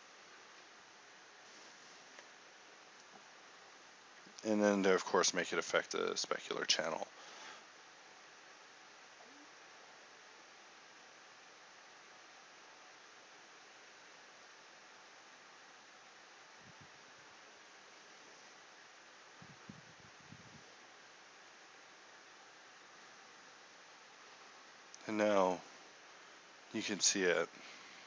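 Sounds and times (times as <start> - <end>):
microphone hiss: 0.0 - 28.0.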